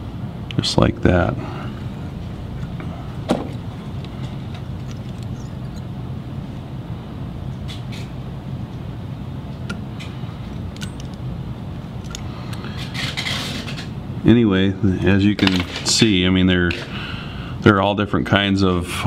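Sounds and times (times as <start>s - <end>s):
low background rumble: 0.0s - 15.2s.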